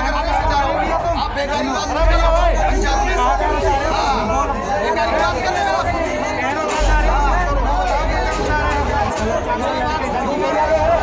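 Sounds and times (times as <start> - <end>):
men talking over one another: 0.0 - 11.0.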